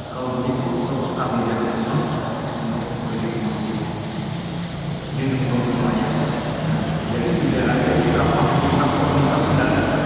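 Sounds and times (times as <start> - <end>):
man giving a lecture: 0.0 - 4.3, 4.9 - 10.0.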